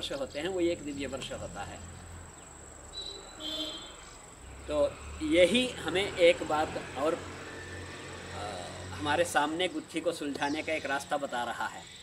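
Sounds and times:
man talking: 0:00.0 - 0:01.9, 0:08.4 - 0:11.8.

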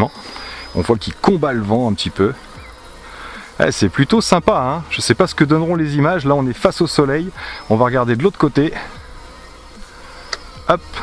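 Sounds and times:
drone motors whining: 0:00.0 - 0:11.0
low hiss: 0:00.0 - 0:11.0.

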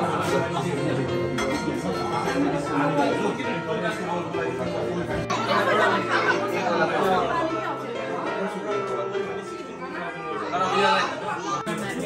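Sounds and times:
chatter of many people: 0:00.0 - 0:12.0.

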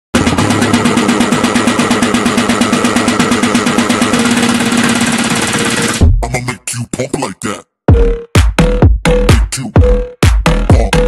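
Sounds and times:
machine-like pulsing buzz: 0:00.2 - 0:06.0.

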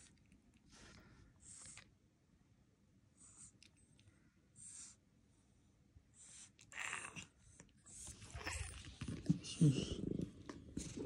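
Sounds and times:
cat purring: 0:06.7 - 0:11.0.

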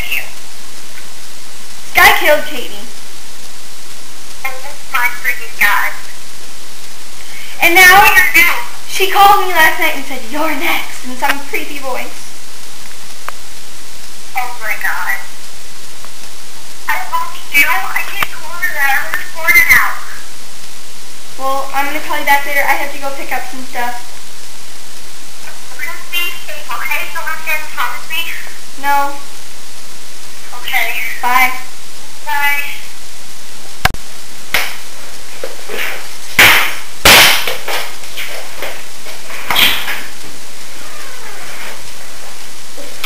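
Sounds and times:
recording hiss: 0:00.0 - 0:43.0
person moving about rustling: 0:33.5 - 0:43.0.

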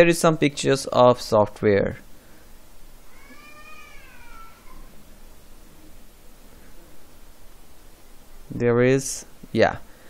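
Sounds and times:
faint drawn-out animal cry: 0:03.0 - 0:05.1.

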